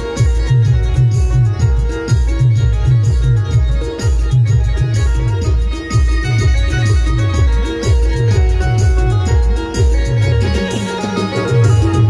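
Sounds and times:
electronic keyboard dance music: 0.0 - 12.0
heavy low beat: 0.0 - 12.0.

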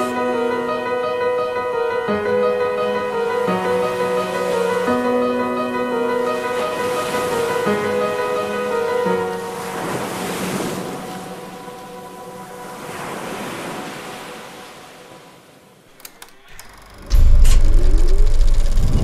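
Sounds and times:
soft piano music: 0.0 - 14.6
sea waves washing onto beach: 6.2 - 15.8
faint clicks: 15.9 - 19.0
short rising tone: 16.4 - 19.0
loud deep boom: 17.0 - 19.0.

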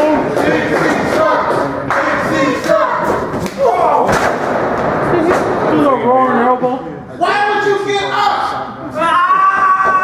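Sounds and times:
voices shouting: 0.5 - 4.1.

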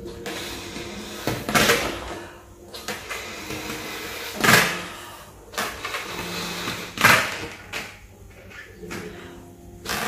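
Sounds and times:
person blowing up balloon: 0.1 - 2.2, 3.0 - 7.5.

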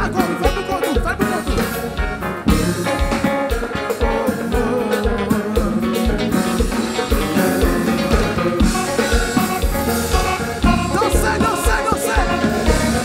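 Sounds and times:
drum kit beat: 0.0 - 13.0
electric guitar: 0.0 - 13.0
live band playing: 0.0 - 13.0.

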